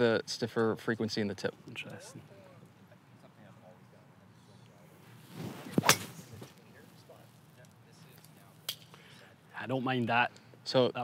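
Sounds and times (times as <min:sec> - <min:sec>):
golf club whooshing through air: 0:05.3 - 0:06.5
golf club striking ball: 0:05.8 - 0:06.3.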